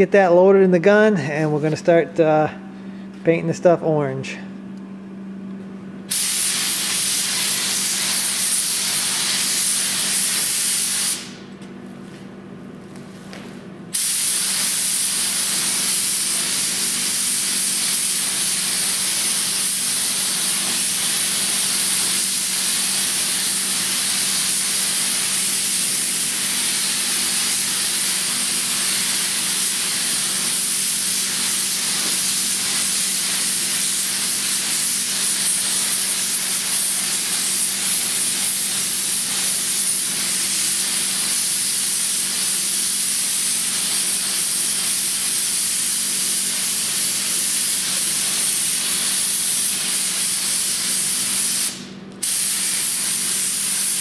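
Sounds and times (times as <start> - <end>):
steady low hum: 0.0 - 14.0
paint spray gun hissing: 6.1 - 11.4, 13.9 - 54.0.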